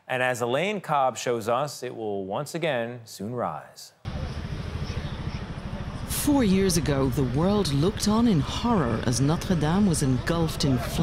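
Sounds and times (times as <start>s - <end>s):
steady low rumble: 4.1s - 11.0s.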